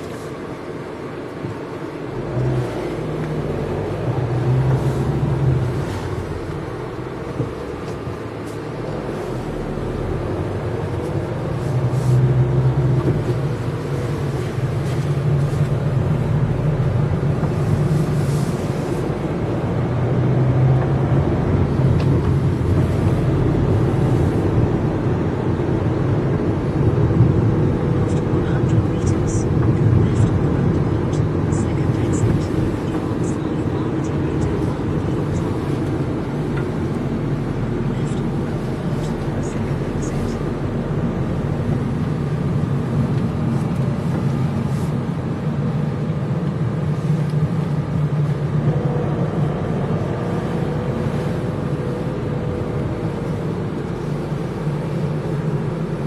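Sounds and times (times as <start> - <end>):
car road and engine hum: 0.0 - 56.0.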